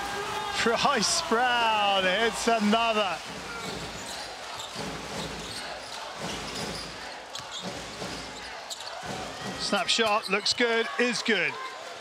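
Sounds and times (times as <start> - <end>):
crowd noise in large hall: 0.0 - 12.0.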